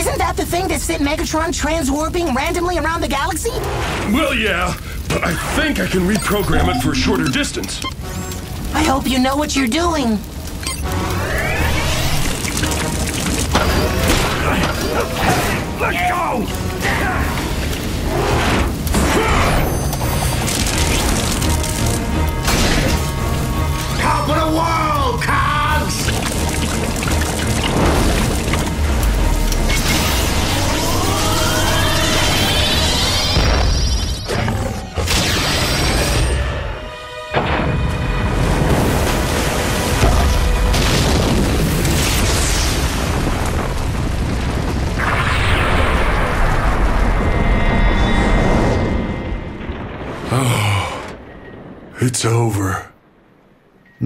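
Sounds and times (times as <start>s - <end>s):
dramatic background score: 0.0s - 54.0s
cartoon explosion booming: 38.4s - 52.1s.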